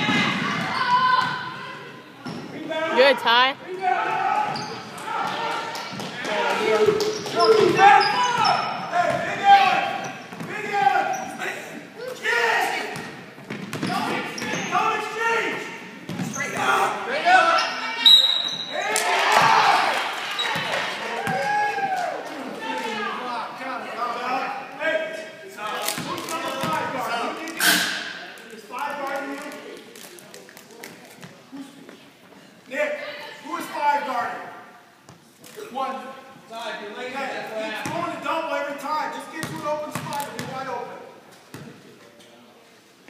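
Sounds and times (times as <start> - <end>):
referee's whistle: 18.0 - 18.8.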